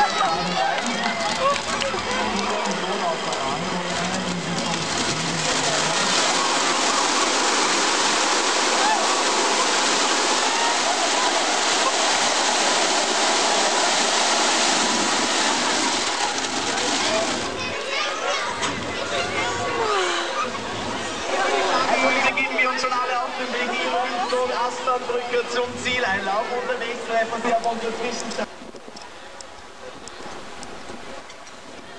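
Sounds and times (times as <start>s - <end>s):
crowd voices: 0.0s - 31.9s
plastic ducks pouring into water: 0.9s - 17.8s.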